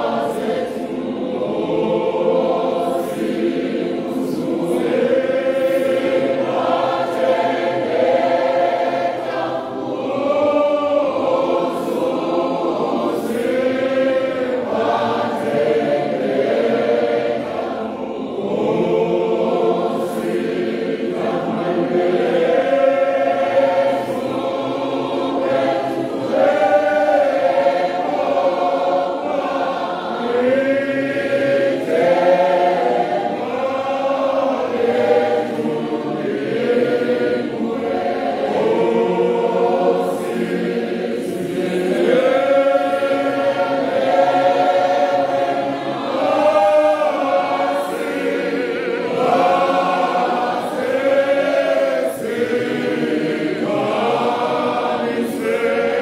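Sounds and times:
congregation singing a hymn: 0.0s - 56.0s.

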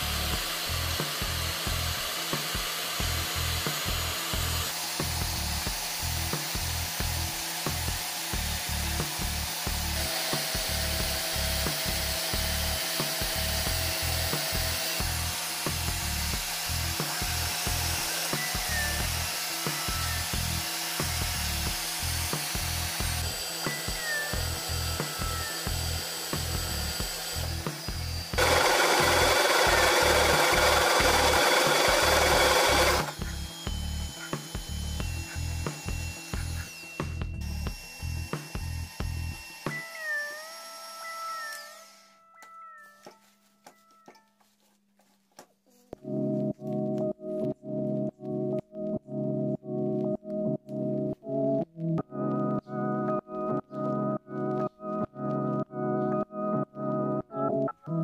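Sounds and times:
background music with steady beat: 0.0s - 40.0s, 46.0s - 58.0s
drill press boring steel: 0.0s - 42.2s.

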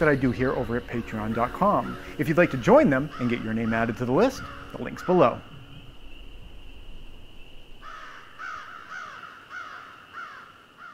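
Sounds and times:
faint high-pitched whine: 0.0s - 10.9s.

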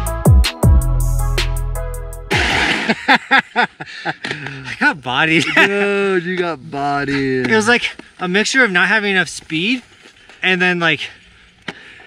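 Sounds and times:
background music: 0.0s - 3.0s
person laughing: 2.3s - 4.7s, 5.3s - 6.0s.

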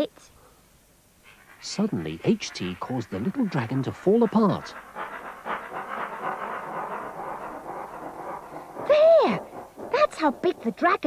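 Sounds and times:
speech: 10.0s - 11.0s.

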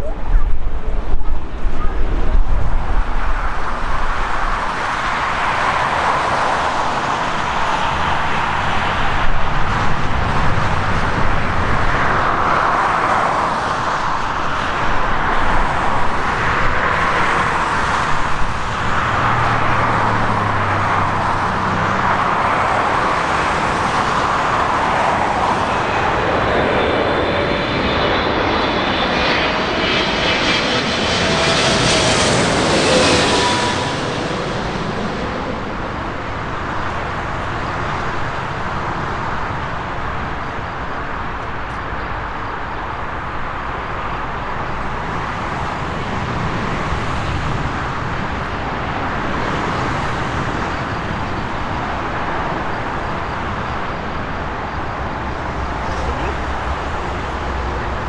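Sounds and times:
jet engines on approach: 0.0s - 58.0s
whine of jet engine fans: 0.0s - 58.0s.

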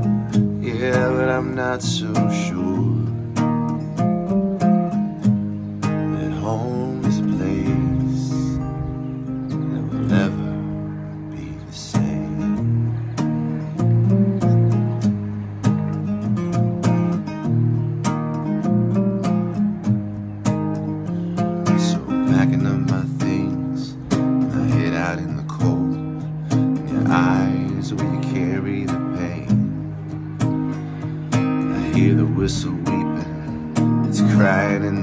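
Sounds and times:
acoustic guitar strummed chords: 0.0s - 35.0s.

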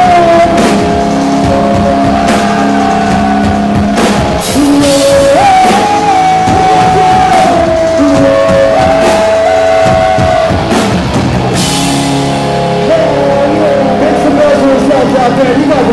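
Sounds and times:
bass guitar: 0.0s - 15.9s
drums: 0.0s - 15.9s
live rock band playing: 0.0s - 15.9s.

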